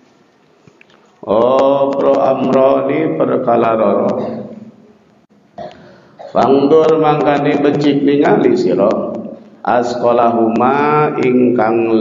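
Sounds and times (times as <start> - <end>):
man speaking: 1.2 - 4.6, 6.3 - 12.0.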